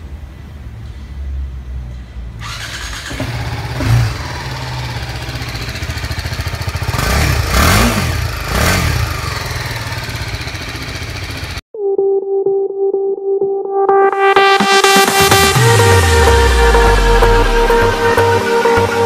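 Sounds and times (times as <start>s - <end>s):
motorcycle engine idling and revving: 0.2s - 11.6s
music: 11.8s - 19.0s.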